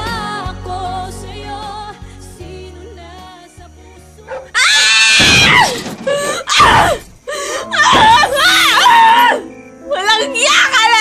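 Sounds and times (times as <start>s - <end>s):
soft background music: 0.0s - 11.0s
high-pitched screaming: 4.5s - 5.8s.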